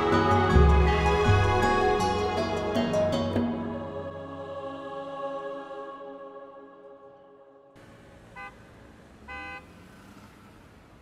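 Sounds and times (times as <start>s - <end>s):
street traffic: 7.8s - 11.0s
car horn toots: 8.2s - 9.8s.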